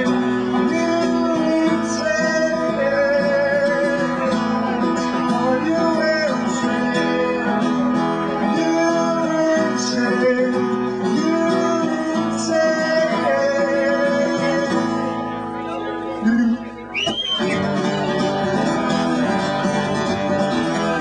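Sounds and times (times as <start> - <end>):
strummed acoustic guitar: 0.0 - 21.0.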